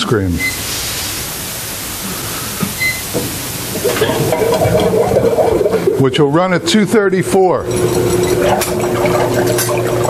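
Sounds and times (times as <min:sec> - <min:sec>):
freezer machine hissing: 0:00.0 - 0:10.0.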